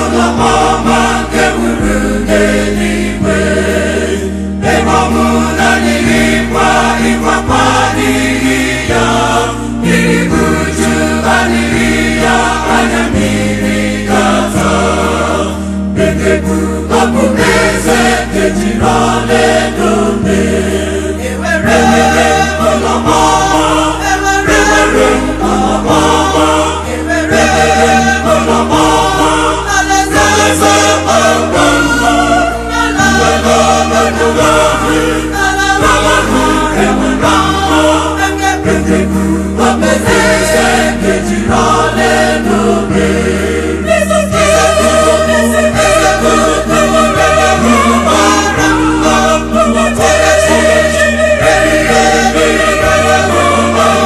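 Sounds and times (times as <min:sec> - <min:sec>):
choir singing gospel: 0:00.0 - 0:54.0
instrumental backing with bass: 0:00.0 - 0:54.0.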